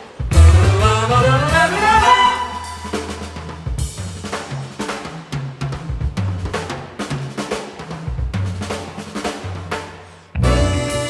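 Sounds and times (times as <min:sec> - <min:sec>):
jazz drum kit playing: 0:00.0 - 0:11.0
electric bass line: 0:00.3 - 0:04.3, 0:10.4 - 0:11.0.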